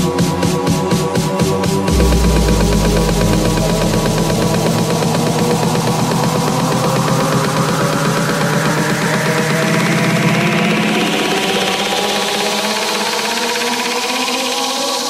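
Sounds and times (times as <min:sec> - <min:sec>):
deep bass hit: 0:01.9 - 0:06.5
sustained synth chords: 0:01.9 - 0:06.5.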